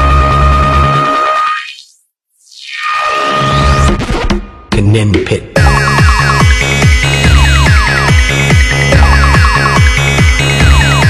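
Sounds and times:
electronic dance music with heavy bass: 0:05.3 - 0:11.0
held high synth tone: 0:05.6 - 0:11.0.

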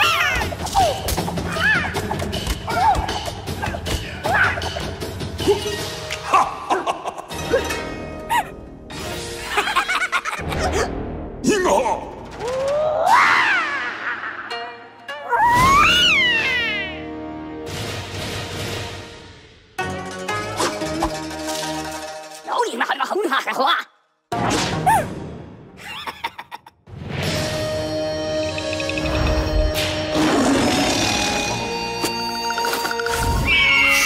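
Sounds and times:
background music: 0:00.0 - 0:34.0.

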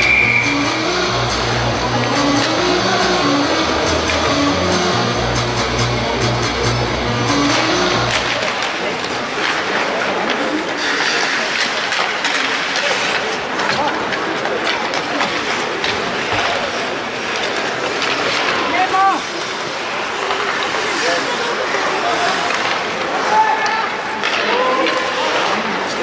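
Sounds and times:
skates scraping ice: 0:00.0 - 0:26.0
sticks and puck clacking: 0:00.0 - 0:26.0.

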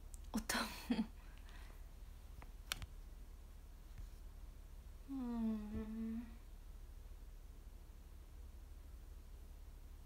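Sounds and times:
woman humming a note: 0:05.1 - 0:06.4.

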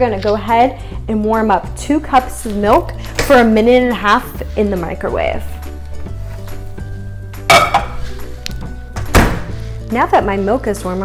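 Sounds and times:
background music: 0:00.0 - 0:11.0
microwave door thunks: 0:09.0 - 0:09.5.

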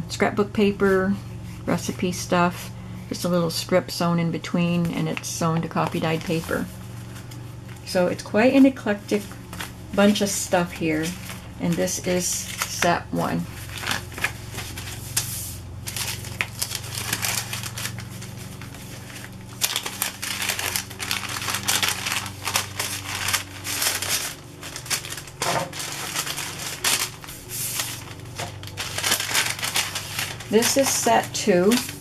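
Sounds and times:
paper rustling: 0:04.7 - 0:07.9, 0:09.1 - 0:32.0
plastic bag crinkling: 0:05.2 - 0:07.9, 0:09.1 - 0:32.0.

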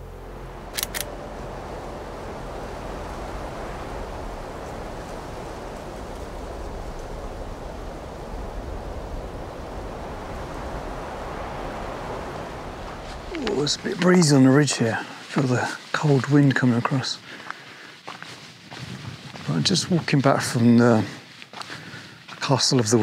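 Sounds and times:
short clicks: 0:00.8 - 0:01.1
wind buffeting microphone: 0:01.2 - 0:22.2.

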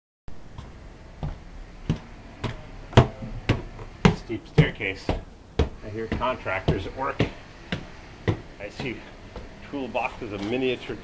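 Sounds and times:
footsteps climbing stairs: 0:00.3 - 0:11.0.

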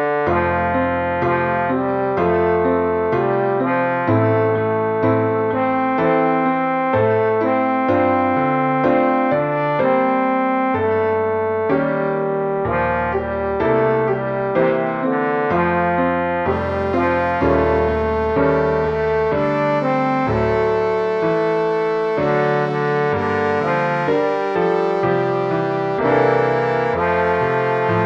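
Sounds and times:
piano accompaniment: 0:00.0 - 0:28.0
synthesized tenor line: 0:00.0 - 0:28.0.

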